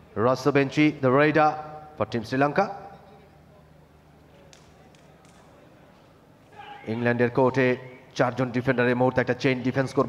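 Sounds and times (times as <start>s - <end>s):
indoor sports hall ambience: 0.0s - 10.0s
man commentating: 6.5s - 10.0s.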